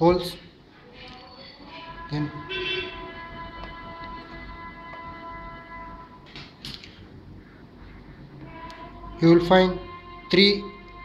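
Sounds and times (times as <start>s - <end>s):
background music chord: 1.7s - 6.2s, 8.5s - 11.0s.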